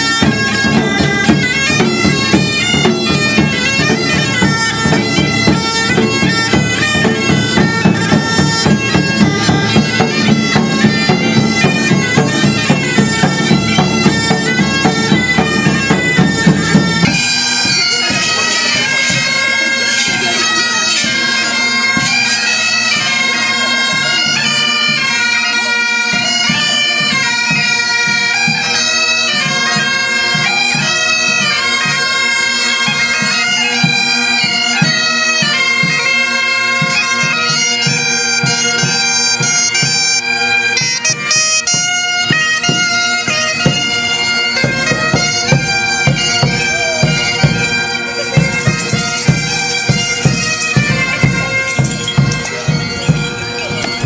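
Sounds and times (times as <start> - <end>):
drum beating: 0.0 - 19.4, 36.8 - 54.0
bagpipes playing a lively tune: 0.0 - 54.0.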